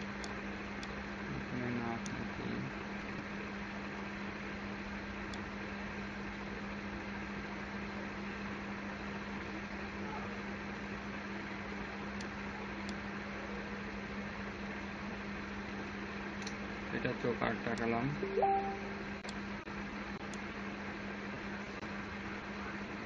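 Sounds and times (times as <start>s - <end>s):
low steady tone: 18.2s - 19.1s.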